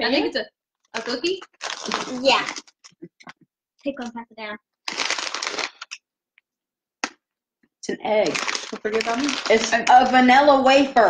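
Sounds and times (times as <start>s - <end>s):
plastic snack bag crinkling: 0.9s - 2.9s, 4.8s - 6.0s, 8.2s - 10.1s.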